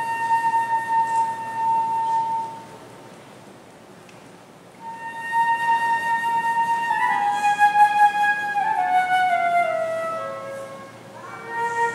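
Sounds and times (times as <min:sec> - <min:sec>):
solo flute note: 0:00.0 - 0:02.8, 0:04.8 - 0:11.9.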